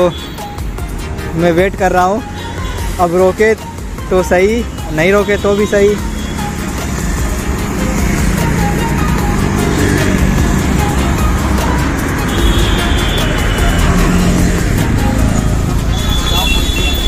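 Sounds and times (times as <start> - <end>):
road traffic rumble: 0.0 - 17.0
bus passing: 5.5 - 17.0.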